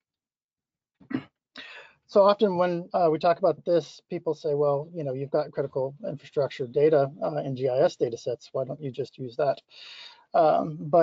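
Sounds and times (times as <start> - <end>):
man coughing: 1.1 - 1.3
breathy exhale: 1.6 - 2.0, 9.7 - 10.3.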